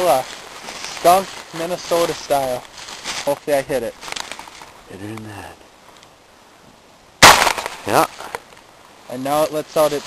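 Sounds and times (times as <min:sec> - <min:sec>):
gunshot: 0:07.2 - 0:08.0.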